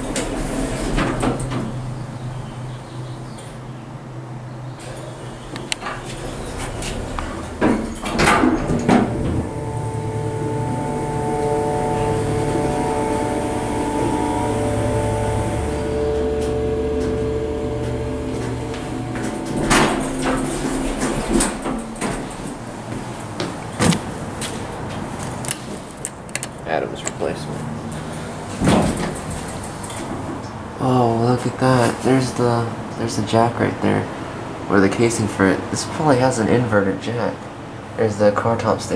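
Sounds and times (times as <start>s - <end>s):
elevator door sliding: 0.0s - 32.5s
elevator hum and whine: 0.0s - 38.9s
knocks and clatter: 4.8s - 9.6s, 18.4s - 27.2s, 28.5s - 30.4s.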